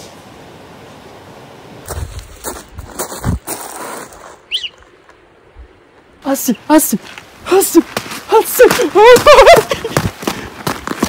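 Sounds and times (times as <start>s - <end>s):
high chirp: 4.5s - 4.8s.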